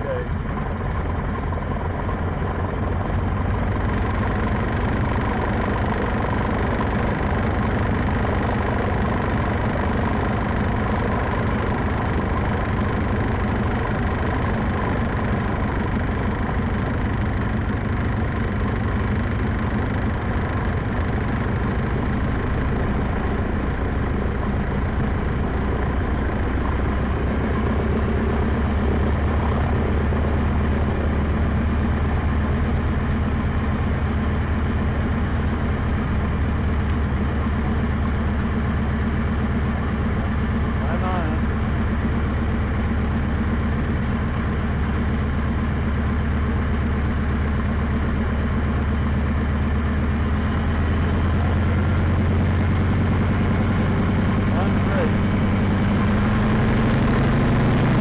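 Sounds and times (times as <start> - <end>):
propeller plane engine running: 0.0 - 58.0.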